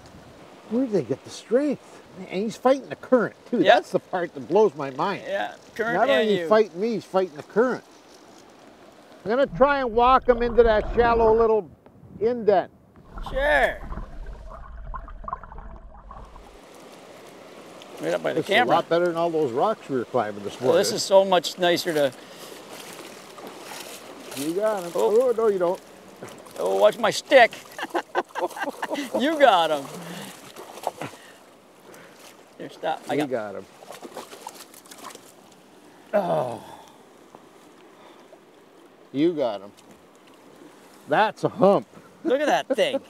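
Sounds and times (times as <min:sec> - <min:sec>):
stream trickling: 0:00.0 - 0:11.5, 0:13.0 - 0:43.0
river running over shallows: 0:00.0 - 0:11.7, 0:13.0 - 0:43.0
water splashing: 0:08.6 - 0:11.6, 0:13.0 - 0:35.7
underwater river gurgling rush: 0:09.4 - 0:11.5, 0:13.0 - 0:18.7.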